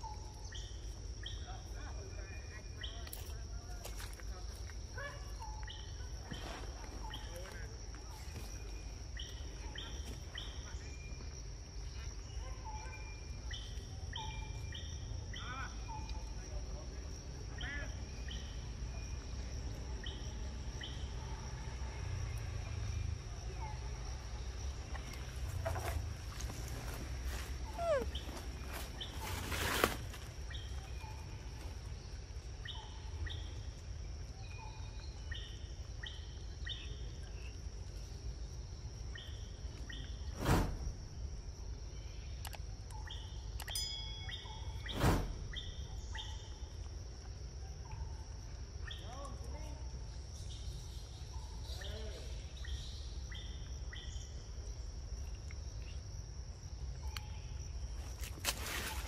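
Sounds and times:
bird chirps: 0:00.0 - 0:03.4, 0:05.0 - 0:40.5, 0:41.6 - 0:46.9, 0:47.6 - 0:54.7, 0:56.9 - 0:58.0.

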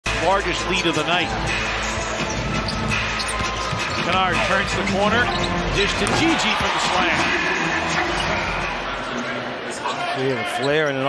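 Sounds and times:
music over loudspeakers: 0:00.1 - 0:09.0
crowd noise: 0:00.1 - 0:11.0.

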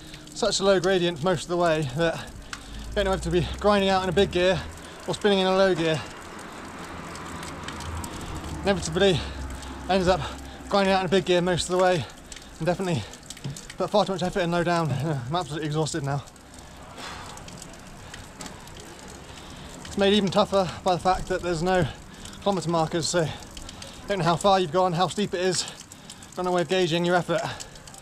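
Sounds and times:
fountain water splashing into basin: 0:00.0 - 0:28.0.

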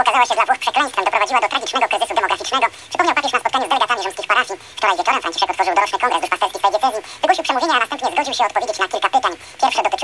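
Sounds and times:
person talking: 0:00.0 - 0:10.0.

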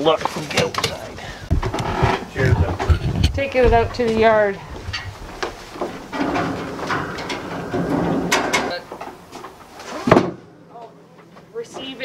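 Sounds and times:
frame poles clattering: 0:00.3 - 0:10.5
footsteps on wooden deck: 0:01.5 - 0:06.9
fabric rustling: 0:01.6 - 0:10.1.

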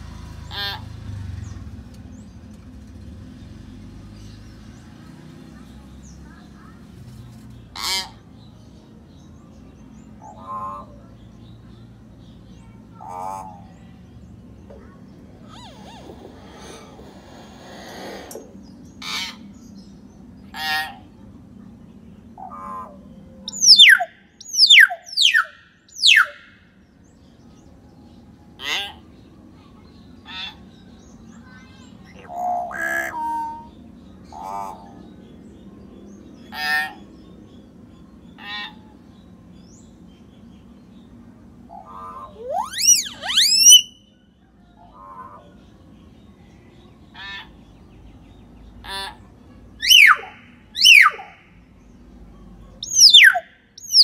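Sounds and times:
myna harsh calls and clicks: 0:15.4 - 0:19.5, 0:32.0 - 0:33.7, 0:41.6 - 0:44.0, 0:49.8 - 0:51.5, 0:52.8 - 0:54.0
myna rising whistles: 0:42.4 - 0:44.0, 0:49.8 - 0:51.3.

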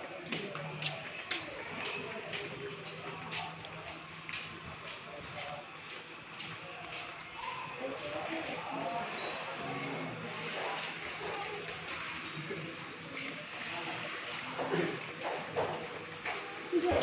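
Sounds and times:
indistinct background voices: 0:00.0 - 0:17.0.

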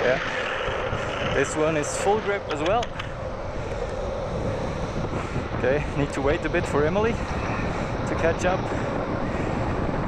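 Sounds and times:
wheel roar on asphalt: 0:00.0 - 0:10.0
wind on microphone: 0:00.0 - 0:10.0.

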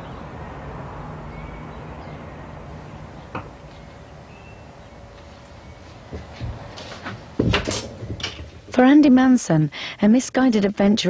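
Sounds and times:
wooden knocks: 0:03.3 - 0:03.6, 0:06.1 - 0:08.8.

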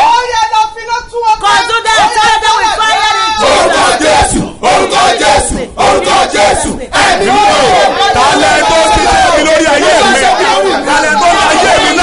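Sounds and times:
man and woman shouting prayers: 0:00.0 - 0:04.2, 0:05.2 - 0:12.0.

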